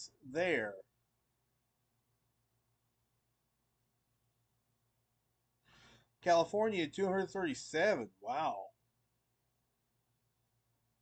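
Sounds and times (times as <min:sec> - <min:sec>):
faint intake of breath: 0:05.6 - 0:06.2.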